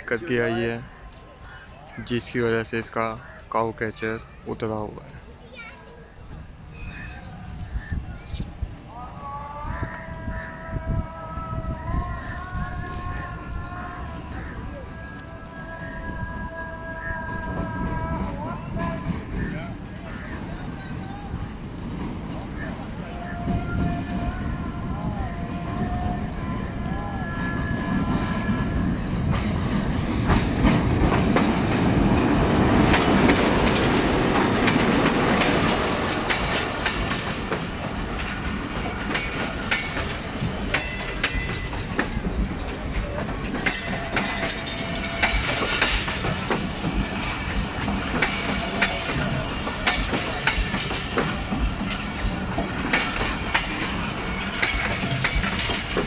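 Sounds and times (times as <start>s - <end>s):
locomotive passing: 0.0s - 56.0s
train rumble: 0.0s - 56.0s
train wheels clickety-clack: 12.0s - 56.0s.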